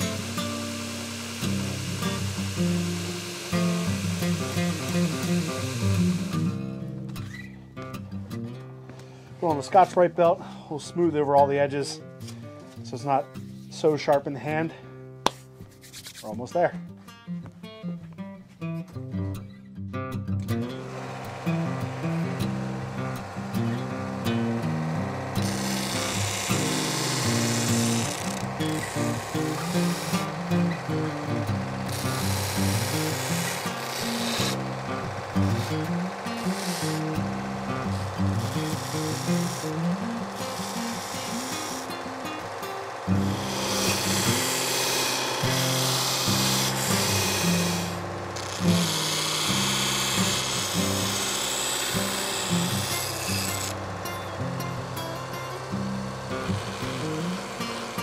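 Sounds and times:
belt grinder grinding knife: 0:00.0 - 0:07.5, 0:20.8 - 0:58.0.

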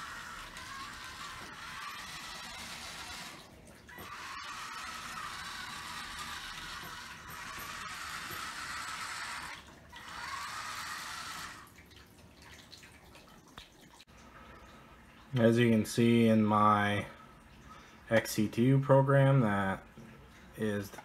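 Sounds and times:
small gear motors whirring: 0:00.0 - 0:11.8.

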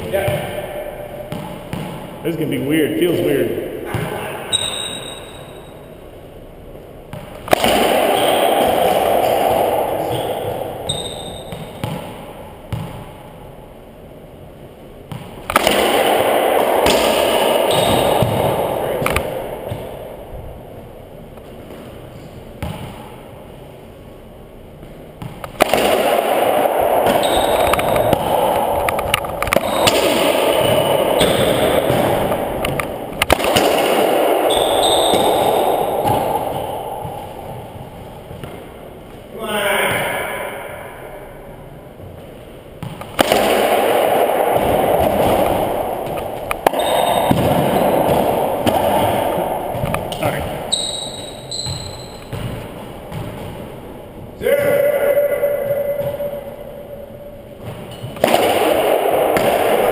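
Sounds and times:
racquetball ball cracks: 0:07.1 - 0:13.2, 0:15.0 - 0:20.2, 0:24.8 - 0:38.9, 0:42.8 - 0:53.8, 0:57.6 - 0:59.9.

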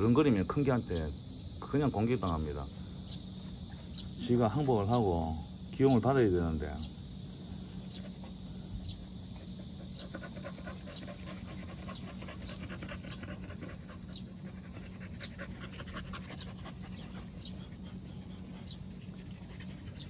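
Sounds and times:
dogs panting: 0:07.5 - 0:20.0.

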